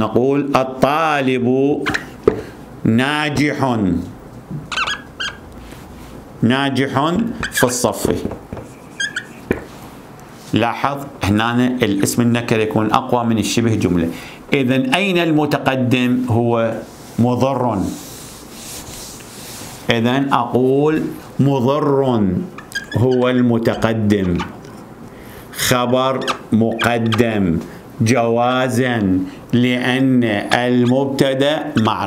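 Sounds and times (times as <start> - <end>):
marker squeaking on whiteboard: 4.6 - 5.5, 7.2 - 9.8, 22.4 - 24.9, 25.6 - 27.5, 30.4 - 32.0
eraser rubbing on whiteboard: 8.5 - 9.8, 17.8 - 19.9.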